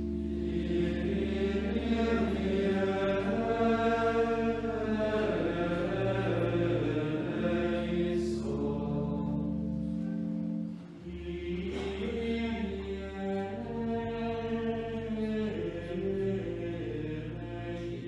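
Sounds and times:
choir singing sustained notes: 0.0 - 18.0
low held drone: 0.0 - 18.0.

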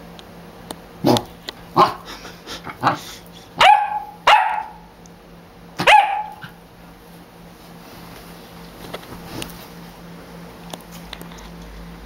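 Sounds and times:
puppy barking: 1.8 - 2.0, 3.6 - 4.9, 5.8 - 6.6.

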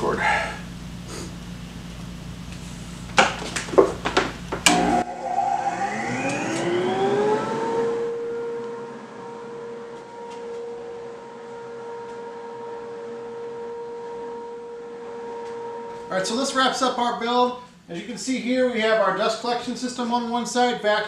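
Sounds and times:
dust collector motor whine and hum: 4.6 - 17.4.

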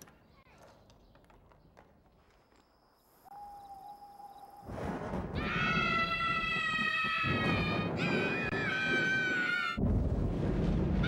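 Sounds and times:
children screaming with delight: 5.4 - 9.8.

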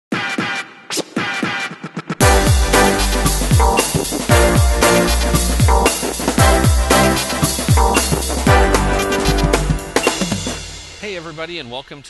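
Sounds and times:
electronic music with falling sweeps: 2.2 - 11.3.

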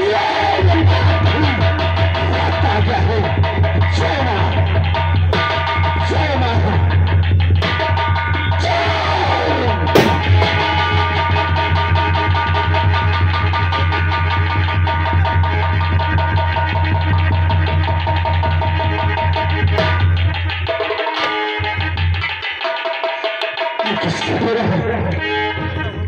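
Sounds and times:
loud music with drum beat: 0.1 - 26.0
blank gunshot bang: 10.0 - 10.9.

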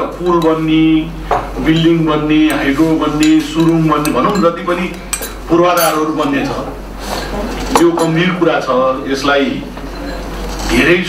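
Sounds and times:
tableware clinking: 2.4 - 6.6, 7.6 - 8.4, 9.8 - 10.9.

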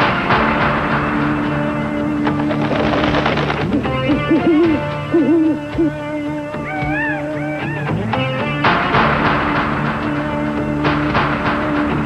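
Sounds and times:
background music notes: 0.0 - 12.0.

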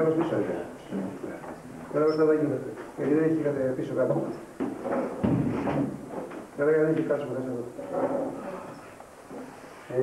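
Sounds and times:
dull knocks and rustling: 4.2 - 6.5
heavy low thump: 5.2 - 6.0.

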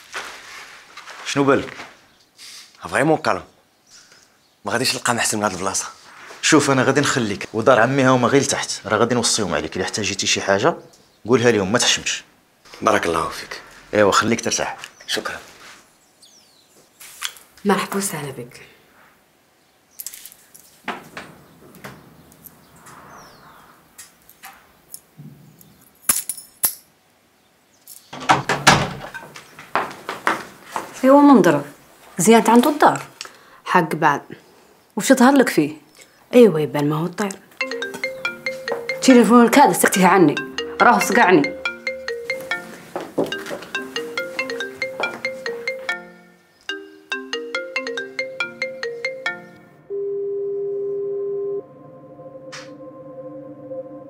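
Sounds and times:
marimba-like phone ringtone: 37.6 - 51.7.

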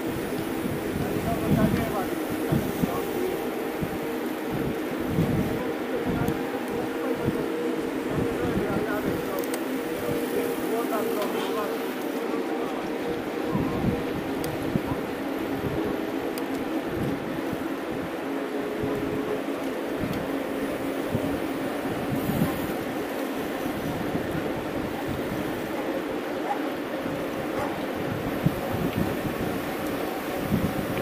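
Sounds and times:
bike tyres humming on asphalt: 0.0 - 31.0
gusty wind rumble: 0.0 - 31.0.

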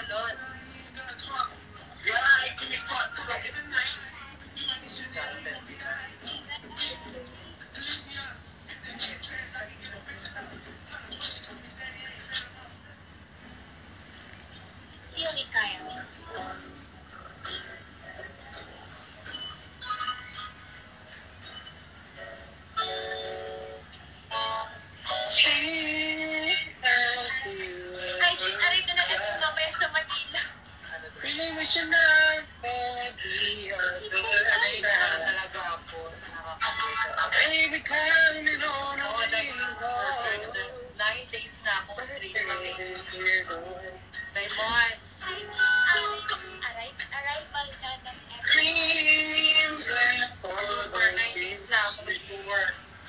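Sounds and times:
music: 15.0 - 53.0.

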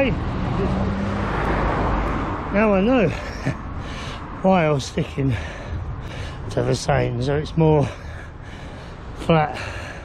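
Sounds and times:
car passing: 0.0 - 10.0.

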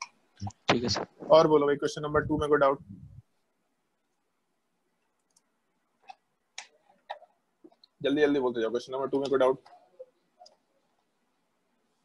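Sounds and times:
faint clicks: 5.0 - 8.0.

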